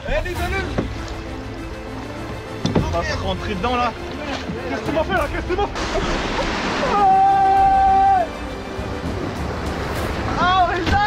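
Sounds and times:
water noise from paddling: 0:00.0 - 0:11.0.

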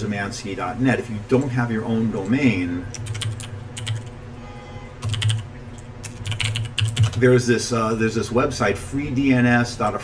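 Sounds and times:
steady low hum: 0:00.0 - 0:10.0
typing on computer keyboard: 0:02.9 - 0:04.1, 0:05.0 - 0:07.2.

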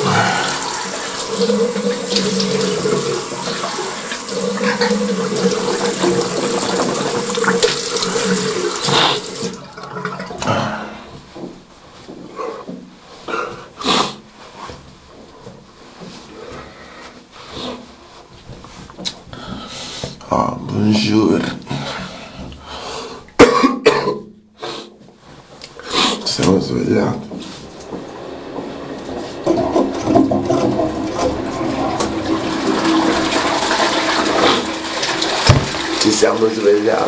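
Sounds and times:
tap water running into sink: 0:00.0 - 0:12.1, 0:26.2 - 0:37.0
man coughing: 0:23.4 - 0:24.3.

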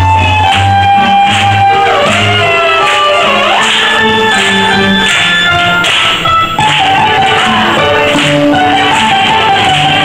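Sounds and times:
people clapping along: 0:00.0 - 0:10.0
violin melody: 0:00.0 - 0:10.0.

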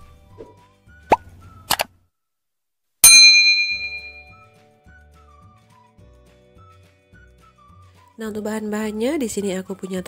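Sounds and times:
bright bell-like ding: 0:03.0 - 0:04.4
faint background music: 0:04.3 - 0:10.0.

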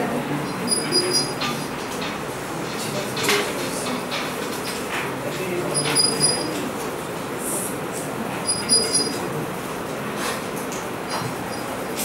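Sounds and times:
classroom background noise: 0:00.0 - 0:12.0
short high-pitched squeak: 0:08.5 - 0:09.2.

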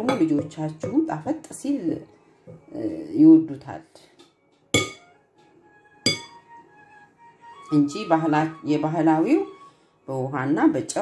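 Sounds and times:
metal spoon clinking glass bowl: 0:04.8 - 0:05.1, 0:06.1 - 0:06.4.

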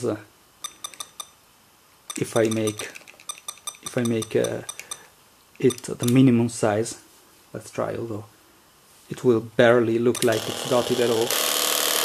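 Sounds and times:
sharp metallic clicks: 0:00.6 - 0:01.4, 0:02.1 - 0:06.2.

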